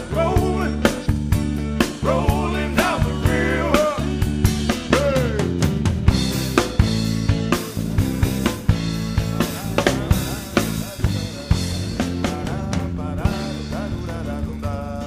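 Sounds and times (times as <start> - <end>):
person singing: 0.0 - 0.9, 2.0 - 5.7, 9.0 - 15.0
drum kit beat: 0.0 - 15.0.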